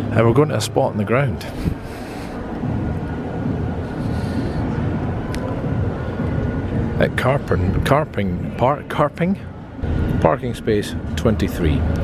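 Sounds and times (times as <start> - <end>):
low rumble of background noise: 0.0 - 12.0.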